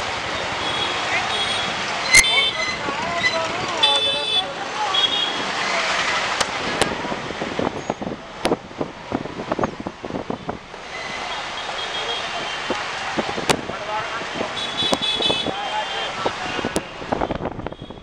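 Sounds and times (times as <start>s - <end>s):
street traffic engines and road noise: 0.0s - 18.0s
vehicle horns honking: 0.5s - 5.5s, 11.2s - 12.7s, 14.3s - 18.0s.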